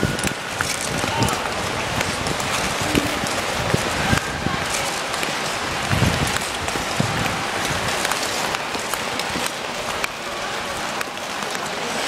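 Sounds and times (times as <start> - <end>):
ice skates scraping on ice: 0.0 - 12.0.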